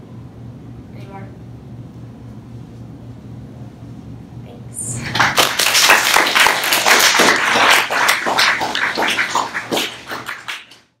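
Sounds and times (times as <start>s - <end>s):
audience applauding: 5.0s - 10.9s.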